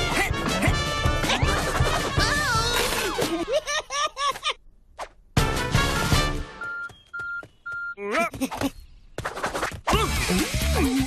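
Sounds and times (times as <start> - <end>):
short electronic beeps: 6.6 - 8.0.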